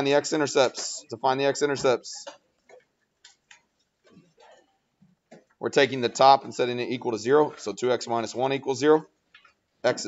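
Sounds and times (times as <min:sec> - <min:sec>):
stylus tapping tablet screen: 0:01.6 - 0:05.6.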